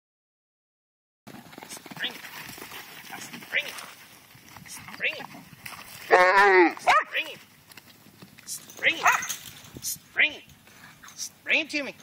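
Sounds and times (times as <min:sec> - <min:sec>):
scuffling in dirt: 0:01.3 - 0:11.6
dogs barking: 0:06.1 - 0:07.2, 0:09.0 - 0:09.4.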